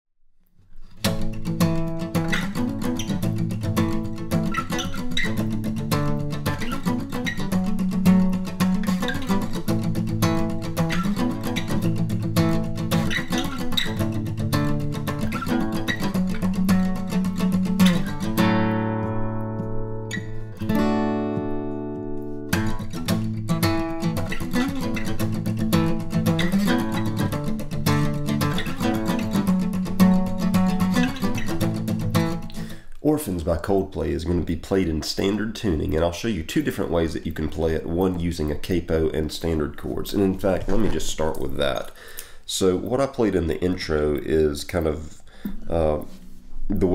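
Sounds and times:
acoustic guitar strumming: 0.8s - 32.8s.

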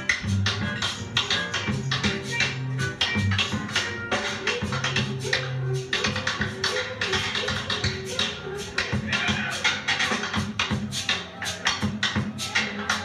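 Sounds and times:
live ska band music: 0.0s - 13.0s.

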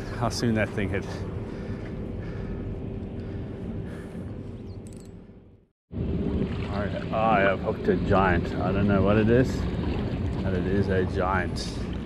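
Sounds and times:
constant hum: 0.0s - 12.0s.

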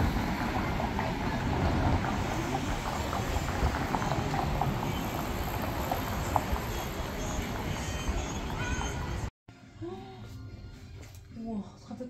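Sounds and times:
traffic noise with low rumble: 0.0s - 9.3s.

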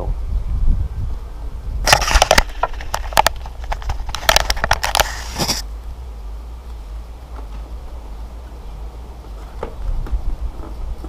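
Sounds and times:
plastic mesh crackling against tyre: 1.9s - 5.6s.

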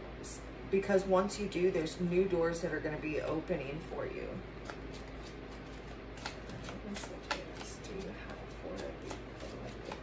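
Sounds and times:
cards being shuffled by hand: 4.6s - 10.0s.

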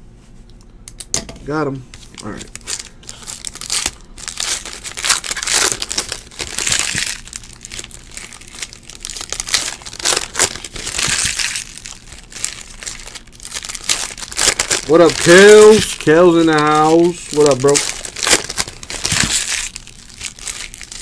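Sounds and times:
cards rustling: 1.9s - 21.0s
foil wrapper crinkling and tearing: 2.0s - 21.0s.

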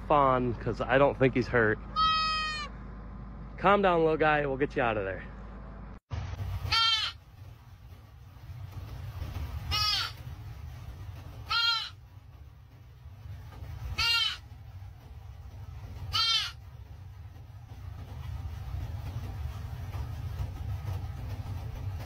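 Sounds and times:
low rumble inside car: 0.0s - 22.0s
deer fawn bleating: 1.9s - 2.8s, 6.7s - 7.2s, 9.7s - 10.2s, 11.4s - 12.0s, 13.9s - 14.5s, 16.1s - 16.6s.

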